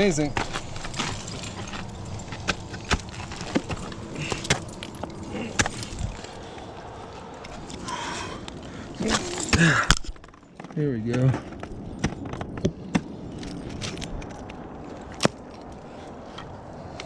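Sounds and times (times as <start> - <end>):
climbing hardware clinking: 0.2 - 6.4
ice axe striking ice: 0.4 - 6.3, 9.0 - 10.4.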